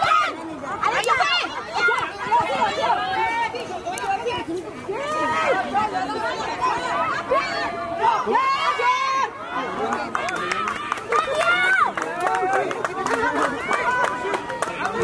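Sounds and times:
spectators shouting: 0:00.0 - 0:15.0.

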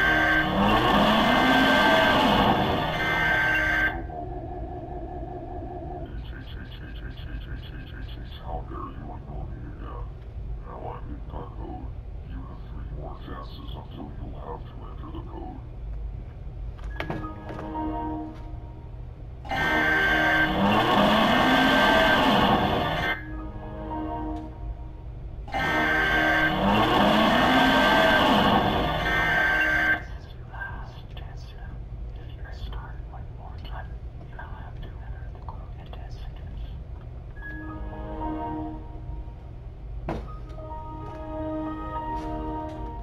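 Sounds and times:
background music: 0:00.0 - 0:06.2, 0:16.9 - 0:30.2, 0:37.4 - 0:43.0
distorted voice-like sound effect: 0:00.0 - 0:10.1.

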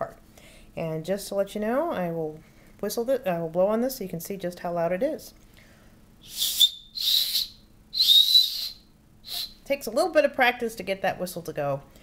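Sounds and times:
breathy whistle blasts: 0:06.2 - 0:09.6.

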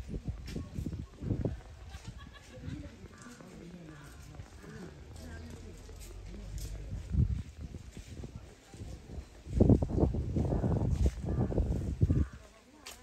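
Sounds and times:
distant people talking: 0:00.5 - 0:13.0.

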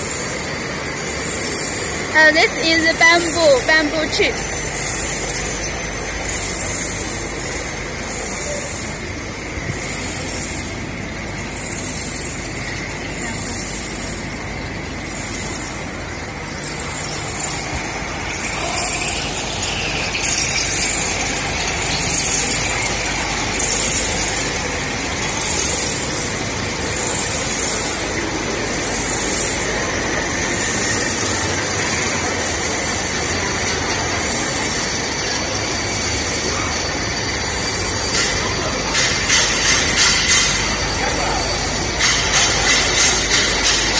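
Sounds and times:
machine running: 0:00.0 - 0:43.9
rhythmic hiss: 0:00.0 - 0:43.9.

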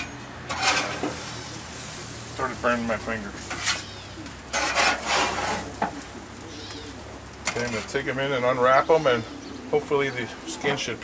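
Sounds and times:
metallic clatter and scrape: 0:00.0 - 0:01.5, 0:03.3 - 0:03.9, 0:04.5 - 0:06.0.

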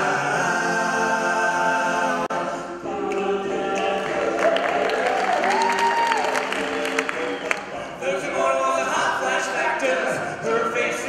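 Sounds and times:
male a cappella group singing: 0:00.0 - 0:11.0.

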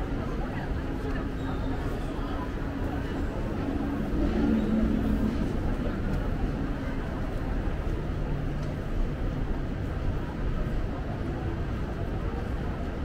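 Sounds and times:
low city rumble: 0:00.0 - 0:13.0
voices of passers-by: 0:00.0 - 0:13.0.

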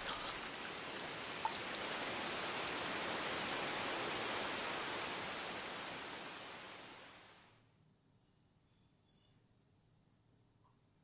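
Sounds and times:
faint steady hiss: 0:00.0 - 0:11.0
faint high chirps: 0:08.1 - 0:09.6.

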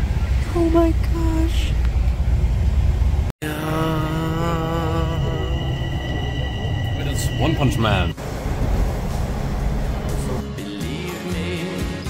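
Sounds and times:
subway train rumble: 0:00.0 - 0:10.6.

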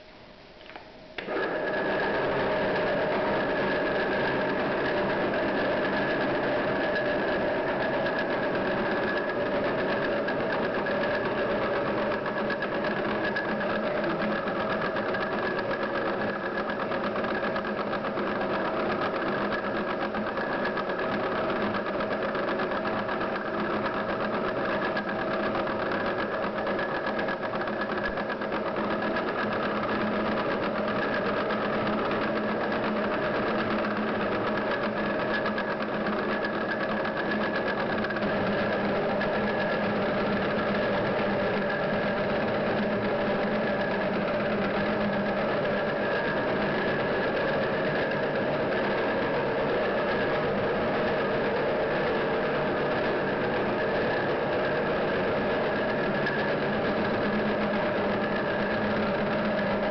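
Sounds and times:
electric mixer motor hum: 0:01.2 - 0:59.9.

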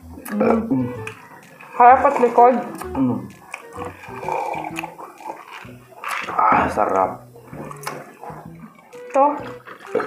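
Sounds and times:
wet chewing and mouth smacks: 0:00.0 - 0:10.0.

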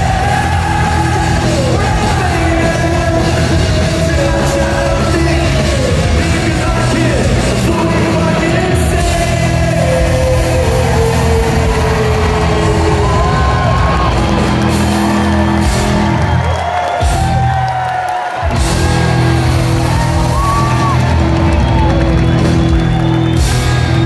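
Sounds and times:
voices singing: 0:00.0 - 0:13.8
distorted electric guitars: 0:00.0 - 0:17.8, 0:18.4 - 0:24.0
bass guitar: 0:00.0 - 0:24.0
drums: 0:00.0 - 0:24.0.

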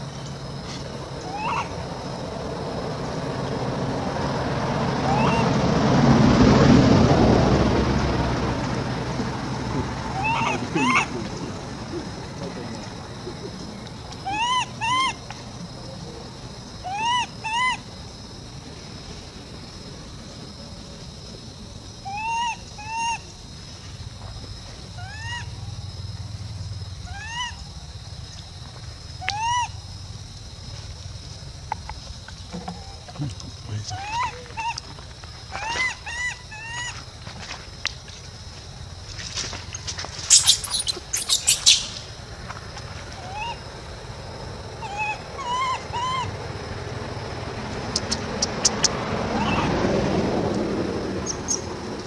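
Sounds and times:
monkey screaming: 0:01.2 - 0:01.8, 0:05.0 - 0:05.6, 0:09.8 - 0:11.3, 0:14.2 - 0:15.2, 0:16.8 - 0:17.8, 0:22.0 - 0:23.2, 0:25.0 - 0:25.5, 0:27.1 - 0:27.6, 0:29.2 - 0:29.8, 0:33.8 - 0:34.9, 0:35.5 - 0:36.9, 0:40.3 - 0:42.1, 0:43.2 - 0:43.6, 0:44.8 - 0:46.3, 0:49.3 - 0:49.8
monkey whimpering coos: 0:10.1 - 0:12.2, 0:14.3 - 0:15.1.

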